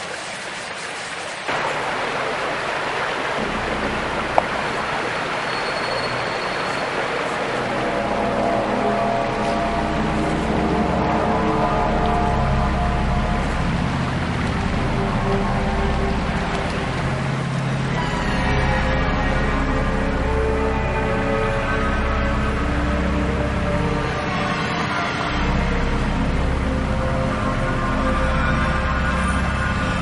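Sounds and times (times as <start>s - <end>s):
creek water flowing: 0.0s - 30.0s
eerie drone music: 1.5s - 30.0s.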